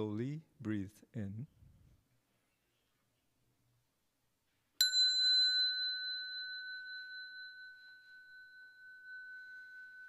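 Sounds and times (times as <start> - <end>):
hand bell ringing: 4.8 - 10.0.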